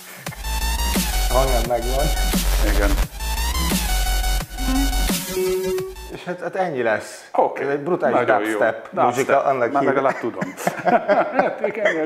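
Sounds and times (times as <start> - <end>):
electronic dubstep music: 0.2 - 6.2.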